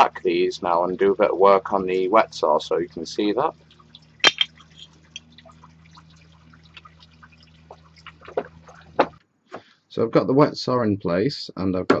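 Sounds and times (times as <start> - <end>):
low steady hum: 0.0 - 12.0
small ticks: 3.6 - 8.8.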